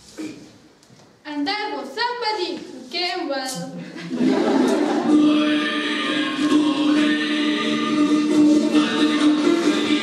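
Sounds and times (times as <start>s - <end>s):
group of voices singing: 4.0s - 10.0s.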